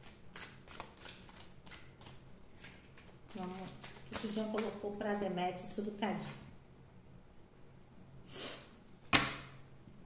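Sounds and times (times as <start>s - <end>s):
cards being shuffled by hand: 0.0s - 4.8s
woman speaking: 3.3s - 6.5s.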